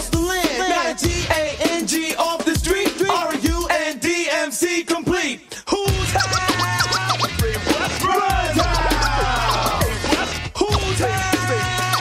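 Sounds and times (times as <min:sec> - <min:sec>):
turntable scratching: 0:00.0 - 0:04.1, 0:05.8 - 0:12.0
hip hop beat with bass line: 0:00.0 - 0:12.0.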